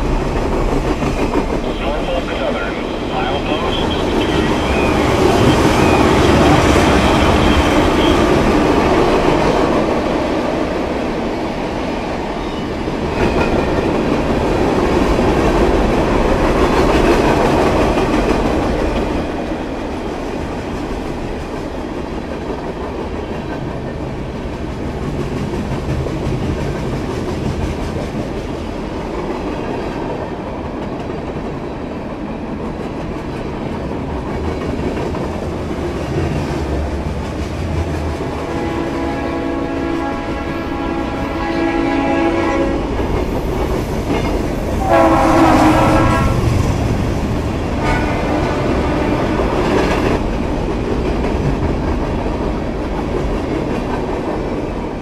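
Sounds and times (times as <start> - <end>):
freight train cars rolling past: 0.0 - 55.0.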